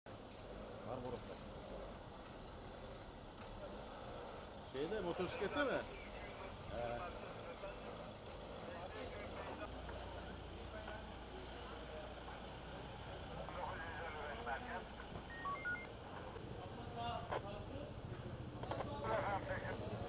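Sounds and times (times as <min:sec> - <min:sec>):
low traffic rumble: 0:00.1 - 0:20.0
people talking in background: 0:02.5 - 0:20.0.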